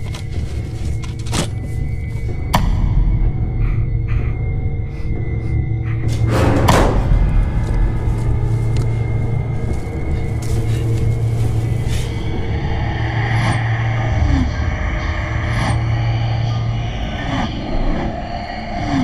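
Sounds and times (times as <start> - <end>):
low droning rumble: 0.3 - 18.8.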